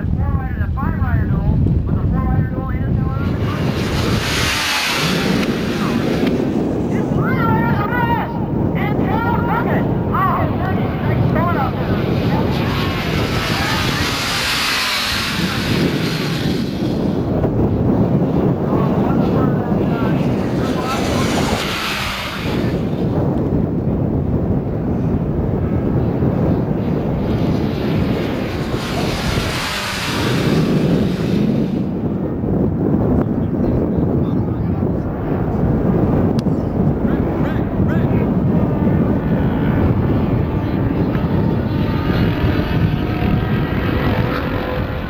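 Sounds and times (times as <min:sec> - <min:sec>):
wind buffeting microphone: 0:00.0 - 0:45.0
racing motorcycles passing: 0:02.4 - 0:32.5, 0:36.8 - 0:45.0.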